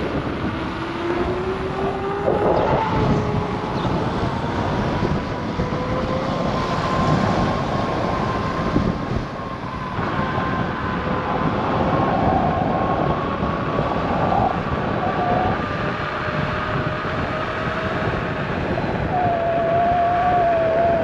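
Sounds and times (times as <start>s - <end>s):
wind and tyre noise rumble: 0.0s - 21.0s.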